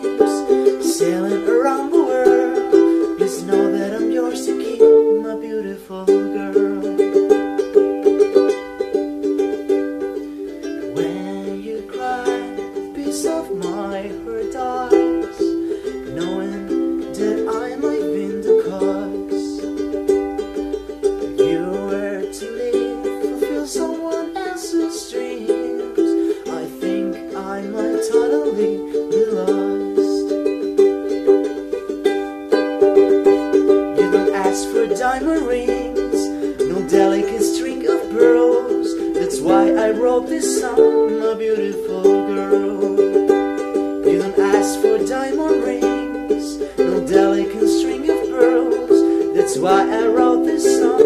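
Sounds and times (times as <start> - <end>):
ukulele strumming chords: 0.0 - 51.0.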